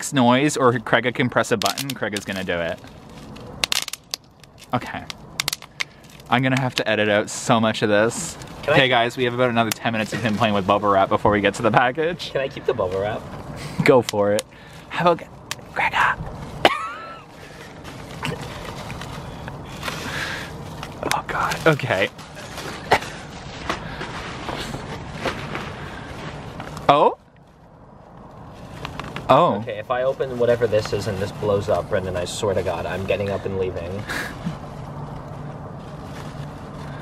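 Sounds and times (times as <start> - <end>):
vehicle engine humming: 0.0 - 37.0
sharp bubble wrap crackles: 1.6 - 12.0, 12.6 - 37.0
bubble wrap crumpling: 1.7 - 13.4, 16.3 - 29.4, 30.0 - 37.0
person laughing: 16.6 - 17.3, 34.1 - 34.6.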